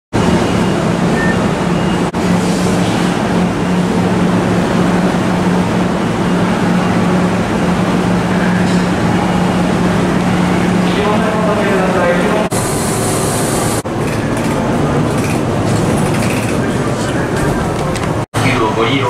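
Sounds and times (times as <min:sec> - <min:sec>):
train pulling in rumbling: 0:00.2 - 0:19.0.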